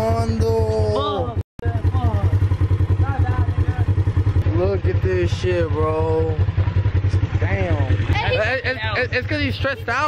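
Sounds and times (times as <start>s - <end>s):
utility vehicle engine idling: 0.0s - 10.0s
voices: 0.0s - 10.0s.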